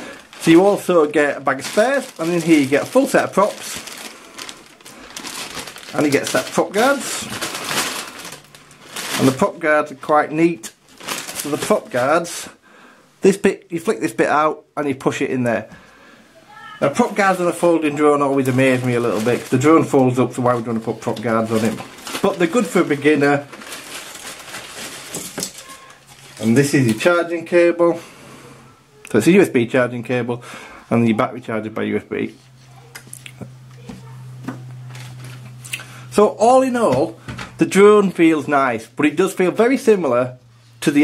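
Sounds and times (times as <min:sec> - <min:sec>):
plastic bag crinkling: 0:00.0 - 0:12.3, 0:16.6 - 0:27.3, 0:34.0 - 0:36.9.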